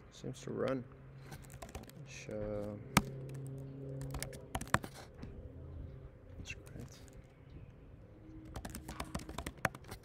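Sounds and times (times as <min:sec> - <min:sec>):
computer keyboard typing: 0:01.4 - 0:02.0, 0:03.0 - 0:04.9, 0:08.5 - 0:10.0.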